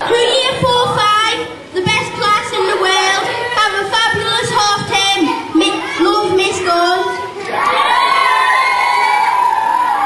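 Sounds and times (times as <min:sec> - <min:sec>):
children shouting and cheering: 0:00.0 - 0:10.0.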